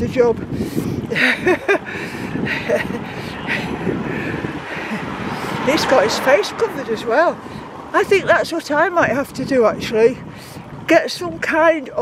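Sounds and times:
wind and road noise: 0.0s - 12.0s
car approaching: 1.0s - 11.0s.

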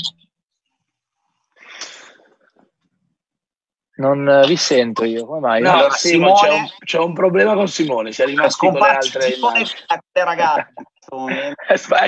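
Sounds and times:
breathy burst into microphone: 1.6s - 2.6s.

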